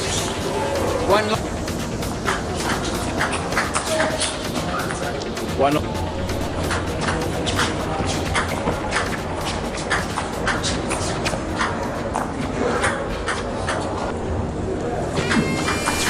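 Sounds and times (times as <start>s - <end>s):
electronic music: 0.0s - 16.0s
hall hum: 0.0s - 16.0s.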